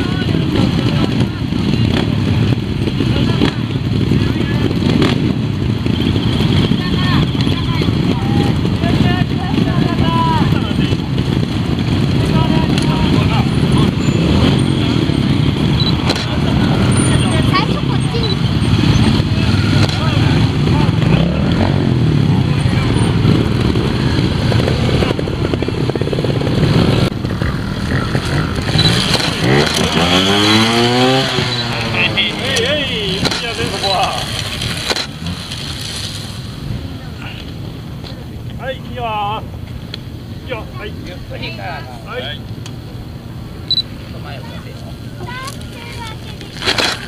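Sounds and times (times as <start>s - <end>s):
motorcycle engine revving: 0.0s - 47.0s
motorcycle engine rumbling: 0.0s - 47.0s.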